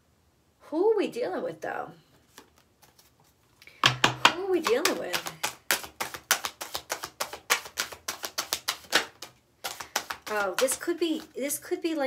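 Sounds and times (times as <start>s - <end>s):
cards being shuffled: 2.1s - 11.4s.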